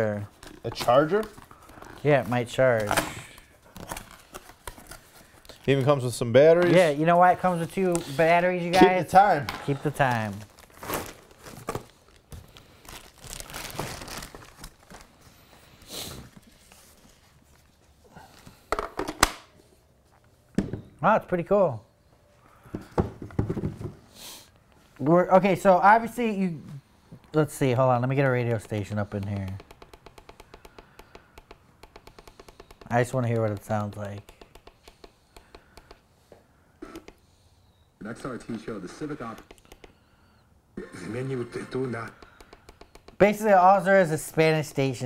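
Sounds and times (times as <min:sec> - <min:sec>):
cardboard and plastic rustling: 0:00.2 - 0:06.1, 0:09.4 - 0:18.0
sharp clicks and knocks: 0:28.5 - 0:36.0, 0:42.2 - 0:43.3.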